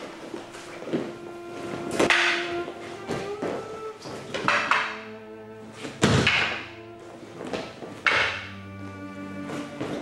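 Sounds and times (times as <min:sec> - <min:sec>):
held string note: 0:00.0 - 0:10.0
wooden weapons clacking: 0:02.0 - 0:02.6, 0:04.3 - 0:05.0, 0:06.0 - 0:06.7, 0:08.0 - 0:08.6.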